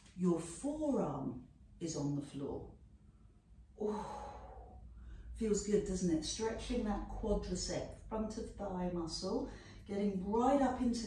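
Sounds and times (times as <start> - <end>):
woman sighing: 3.8 - 4.8.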